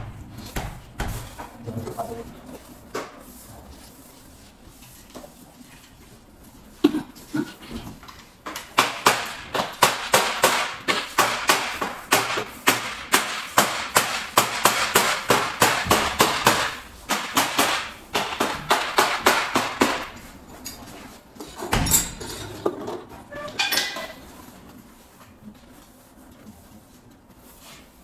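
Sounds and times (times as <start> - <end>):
hammering on metal door frame: 0.0 - 1.4, 8.7 - 20.2.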